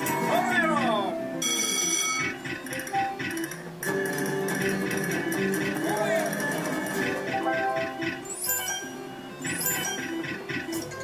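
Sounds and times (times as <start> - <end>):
bright ringing slot machine chime: 1.4 - 2.4, 7.3 - 10.2.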